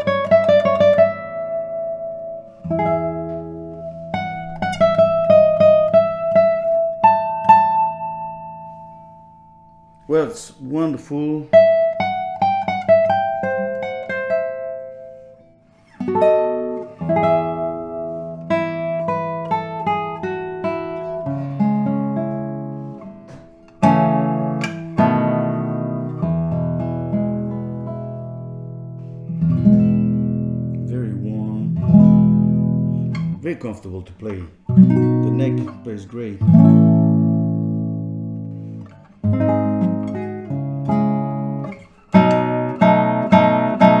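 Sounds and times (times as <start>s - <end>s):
fingerstyle classical guitar: 0.0s - 44.0s.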